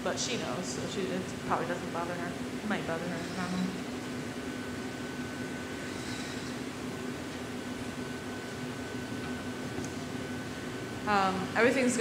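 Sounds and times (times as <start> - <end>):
gas furnace rushing: 0.0 - 12.0
faint high whine: 0.4 - 12.0.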